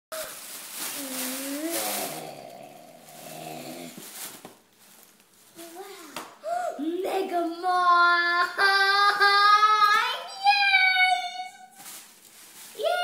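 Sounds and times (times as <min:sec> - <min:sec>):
tissue paper rustling: 0:00.1 - 0:06.1, 0:10.4 - 0:13.0.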